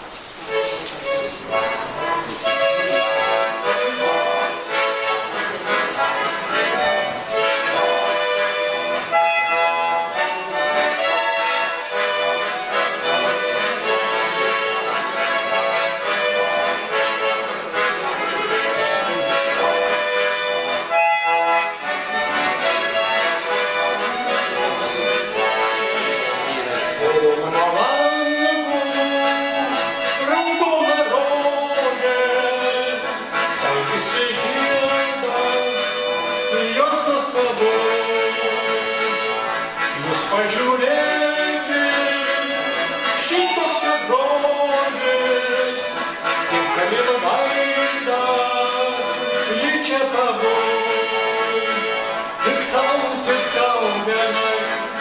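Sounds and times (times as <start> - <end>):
button accordion playing folk tune: 0.0 - 55.0
man singing: 2.1 - 5.1, 21.6 - 39.3, 39.9 - 55.0.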